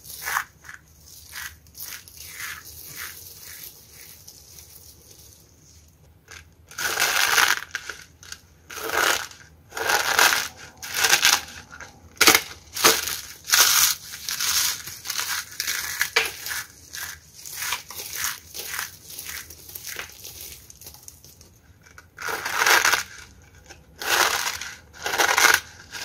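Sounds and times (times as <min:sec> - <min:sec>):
dried soap crunching: 0:00.0 - 0:26.0.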